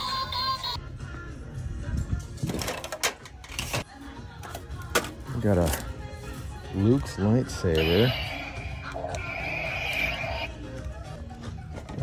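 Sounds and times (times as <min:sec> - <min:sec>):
toy lightsaber buzzing: 0:07.9 - 0:10.5.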